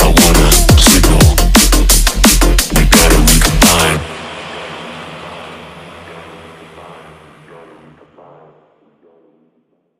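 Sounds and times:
drum and bass track tail: 0:00.0 - 0:09.9.

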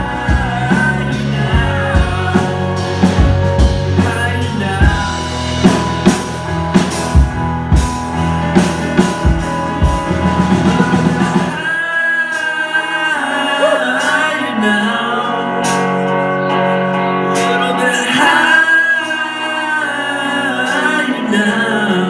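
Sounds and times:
person singing: 0:00.0 - 0:06.1, 0:09.8 - 0:22.0
drum kit: 0:00.0 - 0:14.5, 0:15.4 - 0:21.2
electric bass: 0:00.0 - 0:22.0
electric guitar: 0:00.0 - 0:22.0
keyboards: 0:00.0 - 0:22.0.

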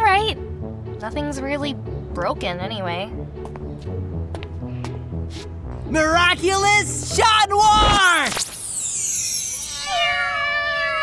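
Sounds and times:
many cats meowing: 0:09.7 - 0:11.0.

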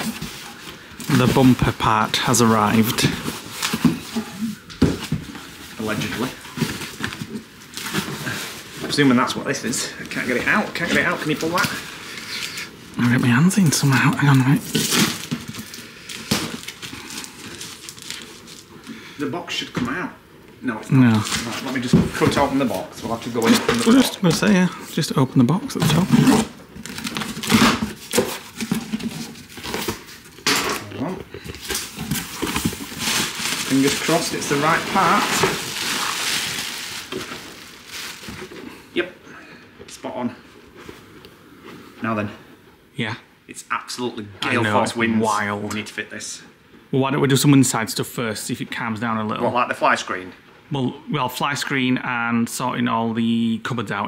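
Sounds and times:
plastic packing rustling: 0:00.0 - 0:19.0, 0:20.9 - 0:38.8.

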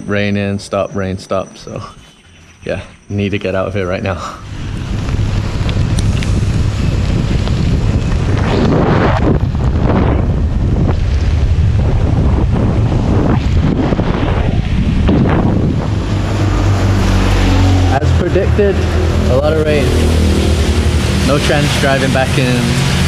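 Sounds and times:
steady low rumble: 0:01.4 - 0:23.0
wind rushing over microphone: 0:04.4 - 0:23.0.

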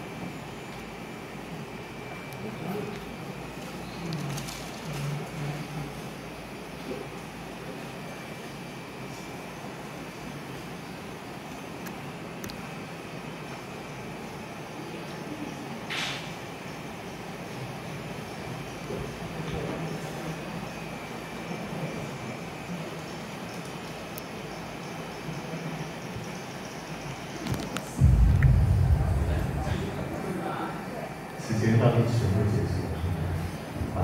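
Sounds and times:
air conditioning and computer hum: 0:00.0 - 0:34.0.

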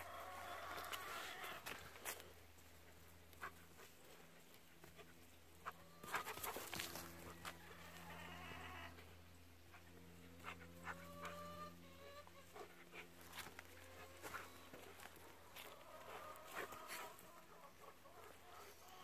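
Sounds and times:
low hum: 0:00.0 - 0:19.0
paws and footsteps on dry grass: 0:00.0 - 0:19.0.

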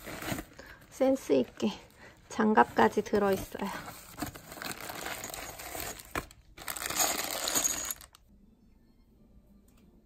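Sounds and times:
metal screws clinking in plastic bag: 0:04.2 - 0:08.2.

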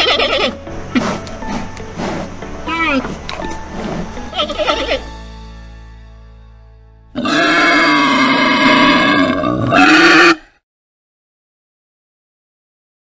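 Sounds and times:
wild boar grumbling: 0:00.8 - 0:04.8.

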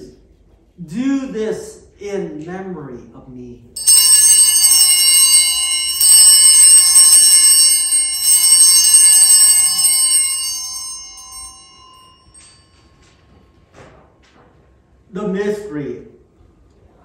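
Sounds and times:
altar bells ringing: 0:03.8 - 0:13.6.

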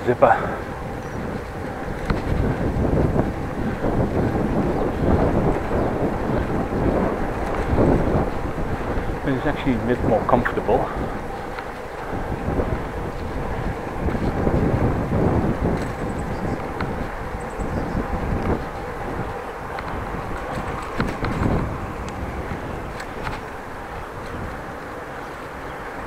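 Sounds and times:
road and tyre rumble: 0:00.0 - 0:26.0
wind rushing over microphone: 0:00.0 - 0:26.0.

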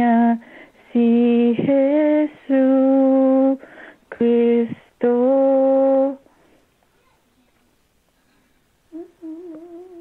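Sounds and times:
person humming over telephone: 0:08.9 - 0:10.0.

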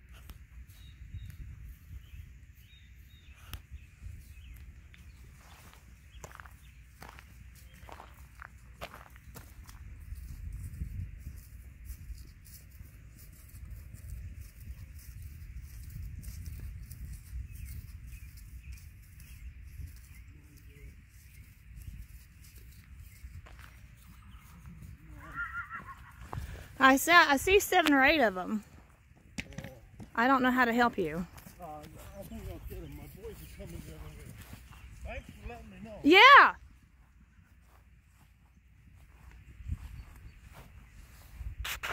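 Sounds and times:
wind rumble on microphone: 0:00.0 - 0:07.2, 0:09.3 - 0:26.8, 0:31.0 - 0:36.0, 0:36.6 - 0:41.9
horse whinnying: 0:25.0 - 0:26.4.

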